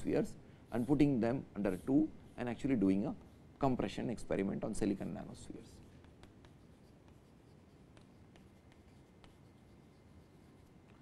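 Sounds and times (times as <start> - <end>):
chalk scratching on chalkboard: 0.7 - 2.6, 4.4 - 11.0.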